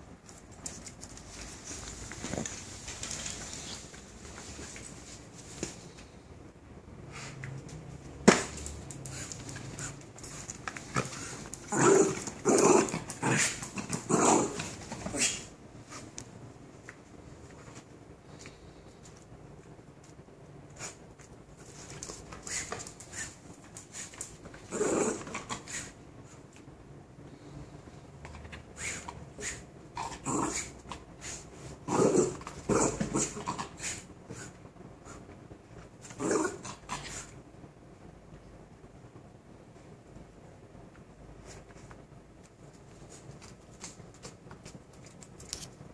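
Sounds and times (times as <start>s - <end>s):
dog growling: 11.0s - 15.5s, 24.6s - 26.0s, 28.8s - 34.6s, 36.1s - 37.3s.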